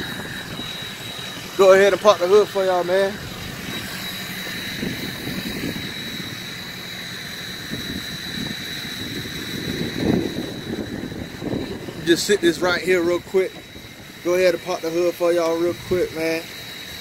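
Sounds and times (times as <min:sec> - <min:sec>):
wind buffeting microphone: 0:00.0 - 0:16.4
car engine idling with whine: 0:00.0 - 0:17.0.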